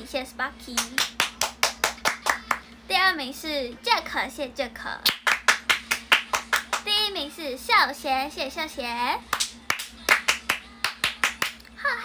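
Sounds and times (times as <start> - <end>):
hands clapping: 0.8 - 2.7, 5.0 - 6.9, 9.3 - 11.7.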